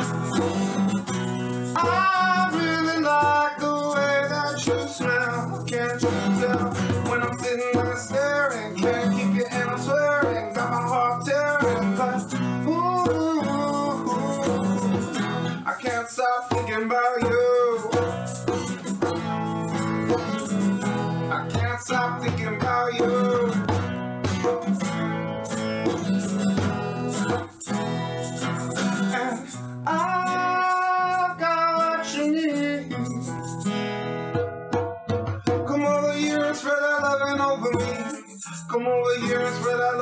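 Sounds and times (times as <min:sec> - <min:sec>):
man singing: 0:00.0 - 0:19.0, 0:20.1 - 0:23.9, 0:25.8 - 0:33.7, 0:35.4 - 0:40.0
egg shaker rhythm: 0:00.0 - 0:34.0, 0:36.0 - 0:40.0
strummed acoustic guitar: 0:00.0 - 0:40.0.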